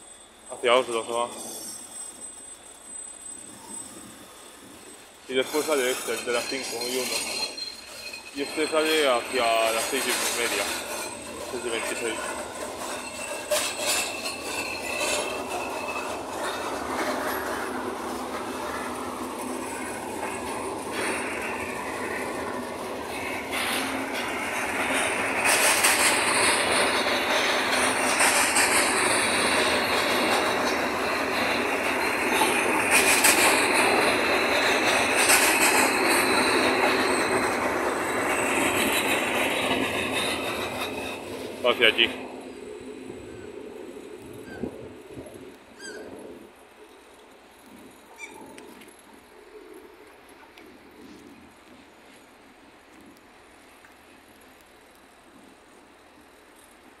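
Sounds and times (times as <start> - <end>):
high-pitched wheel squeals: 0.0 - 41.2, 44.3 - 44.9, 45.7 - 46.3
train wheels rumbling on rail: 0.0 - 57.0.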